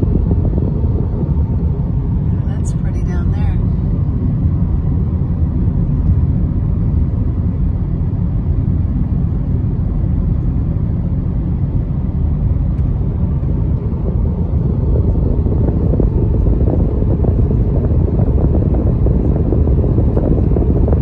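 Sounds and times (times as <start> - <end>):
car tyre and engine rumble: 0.0 - 21.0.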